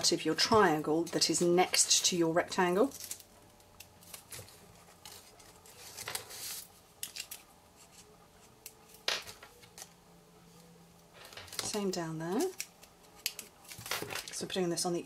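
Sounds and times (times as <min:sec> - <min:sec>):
paper rustles and scrapes: 0:04.0 - 0:08.1.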